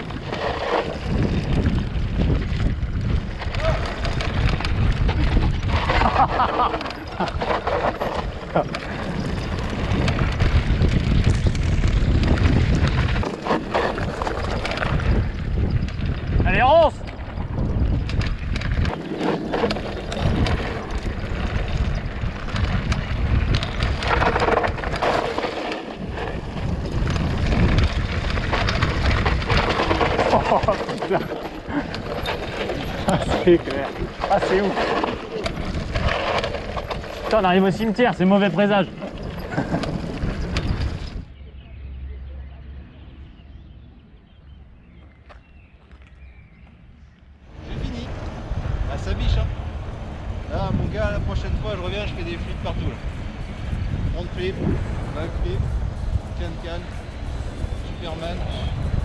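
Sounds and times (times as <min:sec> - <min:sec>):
bike rattling: 0:00.0 - 0:59.0
bike tyres rolling on dirt trail: 0:00.0 - 0:59.0
wind buffeting microphone: 0:00.0 - 0:59.0.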